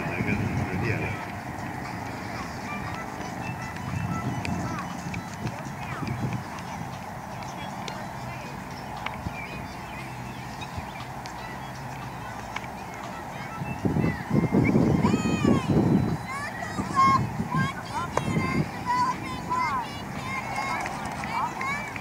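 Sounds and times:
birds chirping: 0:00.0 - 0:22.0
faint distant voices: 0:00.0 - 0:22.0.

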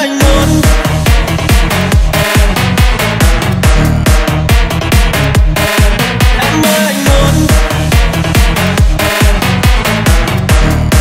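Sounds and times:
electronic dance music: 0:00.0 - 0:11.0
kick drum beat: 0:00.2 - 0:11.0.

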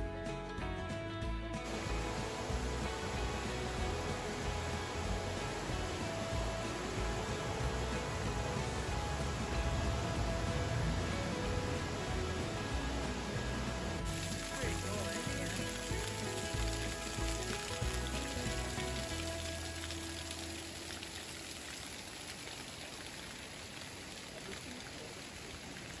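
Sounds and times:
background music: 0:00.0 - 0:21.4
waterfall and stream rushing: 0:01.6 - 0:26.0.

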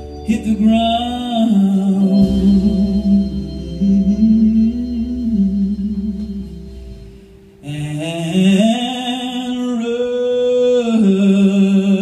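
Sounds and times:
held bass note: 0:00.0 - 0:08.4
slow gliding melody: 0:00.0 - 0:12.0.

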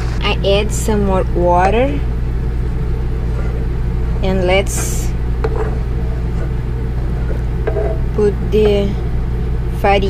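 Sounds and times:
low mechanical hum: 0:00.0 - 0:10.0
spatula stirring broth: 0:02.4 - 0:08.8
spatula tapping pan: 0:04.6 - 0:05.8, 0:07.6 - 0:08.0.

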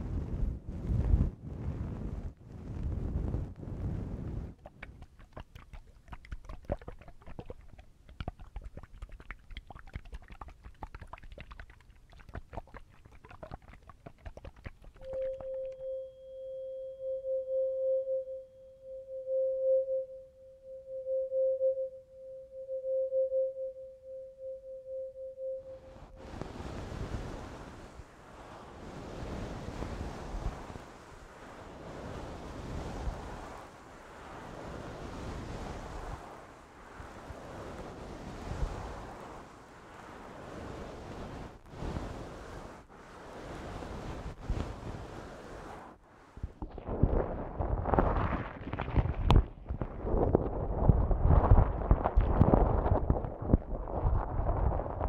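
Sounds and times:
tuning fork ringing: 0:15.1 - 0:26.2.

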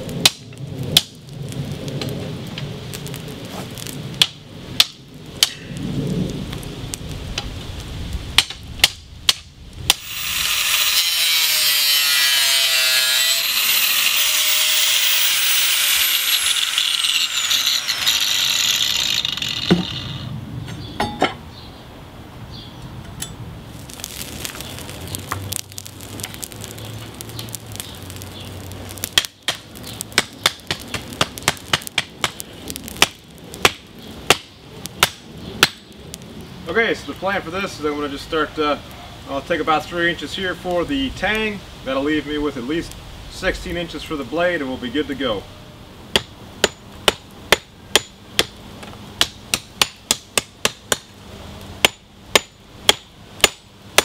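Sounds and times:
angle grinder cutting steel: 0:09.9 - 0:20.3.

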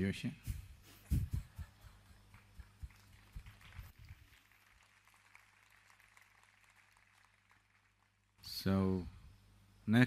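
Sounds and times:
low steady hum: 0:07.7 - 0:10.0.

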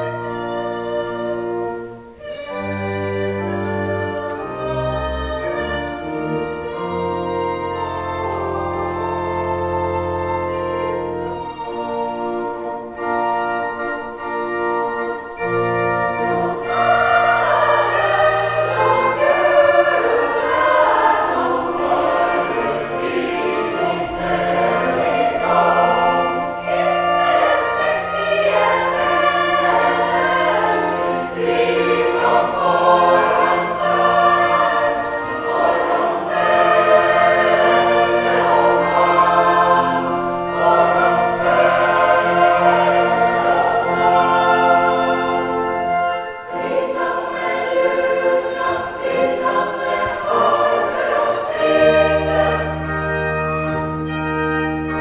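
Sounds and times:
choir singing: 0:00.0 - 0:55.0
organ bass notes: 0:02.6 - 0:55.0.

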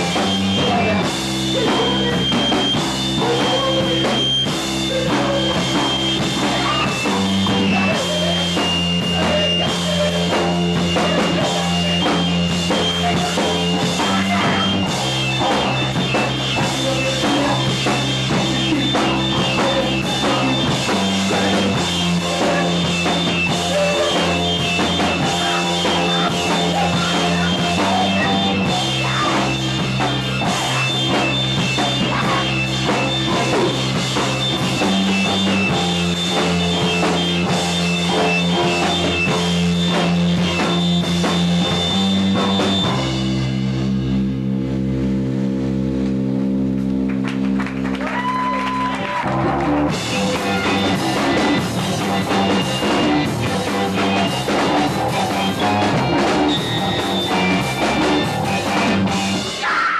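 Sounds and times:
drum kit: 0:00.0 - 0:59.9
electric bass: 0:00.0 - 0:59.9
electric guitar: 0:00.0 - 0:59.9.

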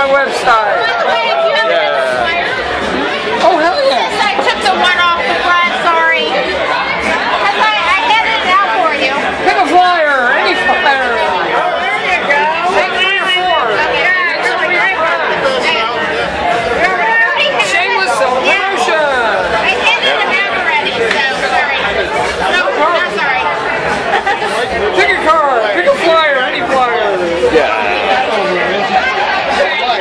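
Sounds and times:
chatter of many voices: 0:00.0 - 0:30.0.

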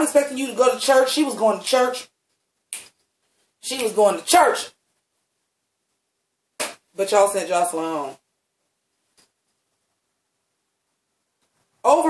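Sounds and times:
person speaking: 0:00.0 - 0:02.2, 0:03.6 - 0:04.8, 0:06.6 - 0:08.3, 0:11.8 - 0:12.0.

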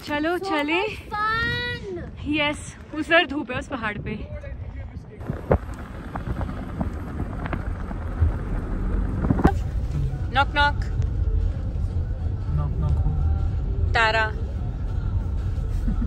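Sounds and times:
car engine and tyre rumble: 0:00.0 - 0:16.0.

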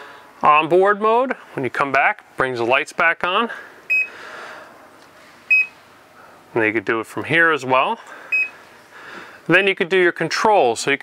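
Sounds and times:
short high beeps: 0:03.9 - 0:04.1, 0:05.5 - 0:05.8, 0:08.3 - 0:08.6.

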